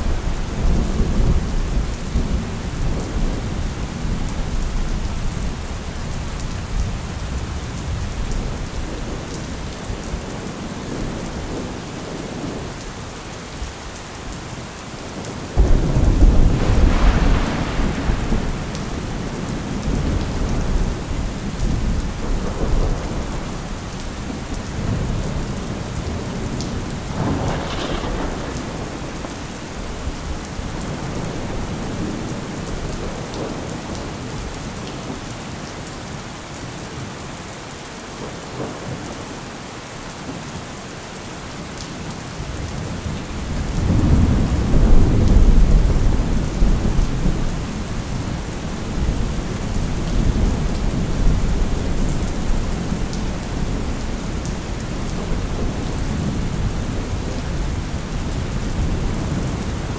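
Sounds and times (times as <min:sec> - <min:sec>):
steady rain: 0:00.0 - 0:59.9
thunder rumbling: 0:15.6 - 0:34.0, 0:43.0 - 0:59.9.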